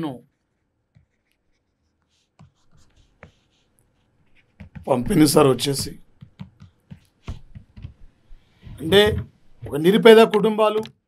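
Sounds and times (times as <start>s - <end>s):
pen scratching on paper: 0.5s - 9.8s.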